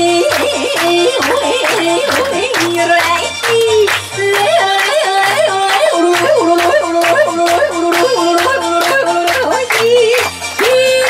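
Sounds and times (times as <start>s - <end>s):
backing track with beat and bass: 0.0s - 11.0s
woman yodeling: 4.3s - 11.0s.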